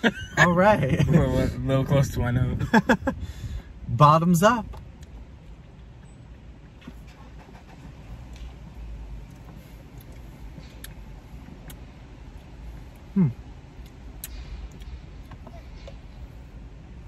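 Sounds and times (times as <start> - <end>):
low car cabin hum: 0.0 - 17.0
man humming hmm: 13.1 - 13.4.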